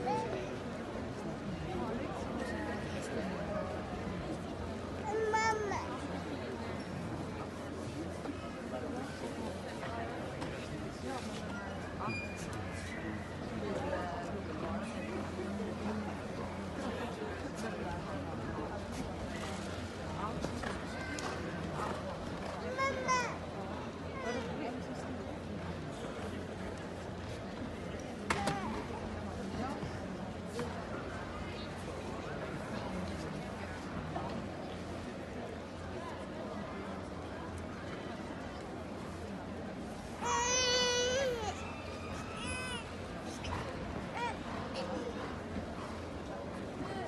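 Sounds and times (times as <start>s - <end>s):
murmur of crowd voices: 0.0s - 47.0s.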